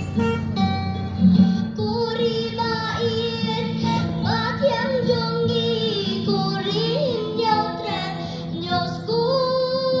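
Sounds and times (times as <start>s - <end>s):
instrumental accompaniment: 0.0s - 4.7s.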